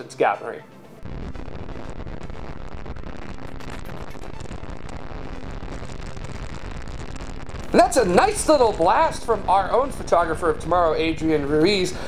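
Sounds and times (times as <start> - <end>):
rocket engine crackling rumble: 1.0 - 12.0.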